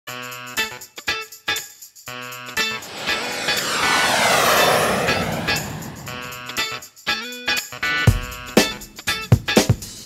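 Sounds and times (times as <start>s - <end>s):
whoosh transition effect: 2.8s - 6.4s.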